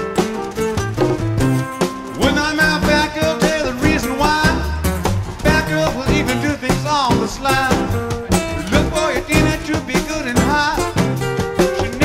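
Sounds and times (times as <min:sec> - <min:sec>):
bass: 0:00.0 - 0:12.0
drums: 0:00.0 - 0:12.0
strummed acoustic guitars: 0:00.0 - 0:12.0
male lead vocal: 0:02.1 - 0:12.0.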